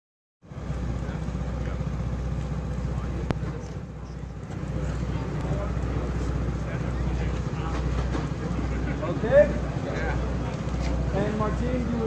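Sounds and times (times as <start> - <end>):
vehicle engine idling: 0.4 - 12.0.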